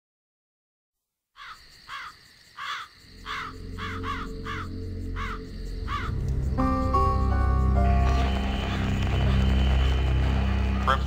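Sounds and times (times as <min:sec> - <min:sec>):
crow cawing: 0:01.4 - 0:06.2
low drone: 0:03.5 - 0:11.0.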